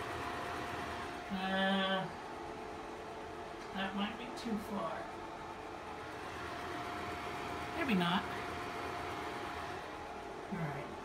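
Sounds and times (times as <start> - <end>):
film projector whirring: 0.0 - 11.0.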